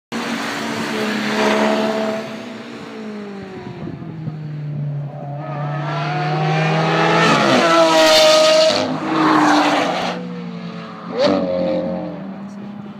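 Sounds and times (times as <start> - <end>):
race cars passing at speed: 0.1 - 12.9
car engine accelerating hard: 0.2 - 12.9.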